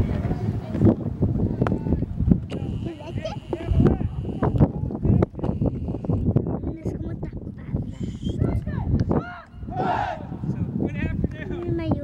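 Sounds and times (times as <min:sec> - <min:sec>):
group of people talking: 0:00.0 - 0:12.0.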